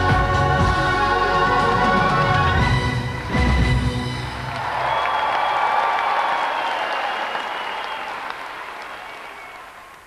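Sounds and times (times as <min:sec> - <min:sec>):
audience applauding: 0:04.2 - 0:10.0.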